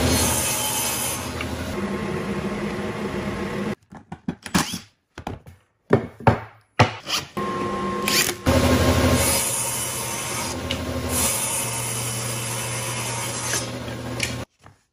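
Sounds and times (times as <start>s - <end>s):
table saw cutting wood: 0.0s - 3.7s, 6.9s - 14.5s.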